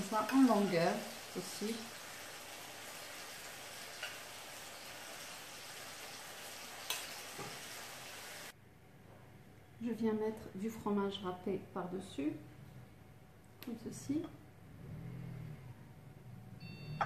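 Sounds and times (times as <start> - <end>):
steady hiss: 0.0 - 8.6.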